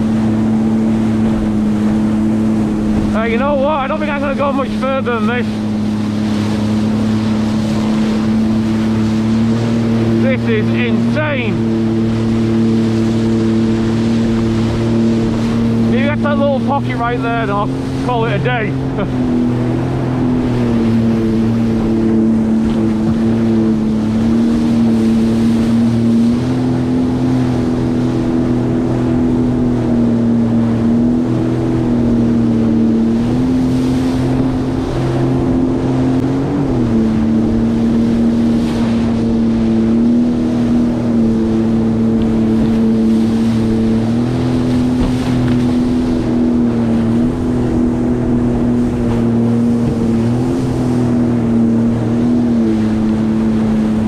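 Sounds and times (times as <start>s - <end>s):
water rushing against hull: 0.0s - 54.0s
watercraft engine running: 0.0s - 54.0s.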